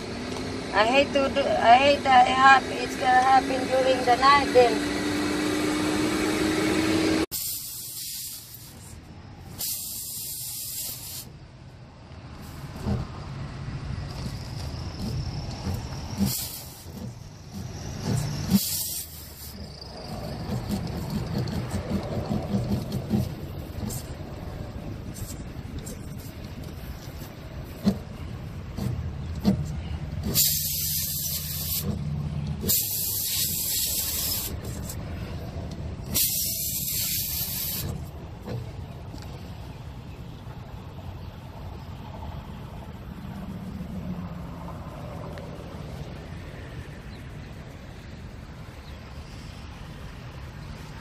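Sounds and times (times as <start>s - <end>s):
air hissing out of tire: 5.0s - 11.4s, 14.2s - 21.5s, 29.8s - 38.1s.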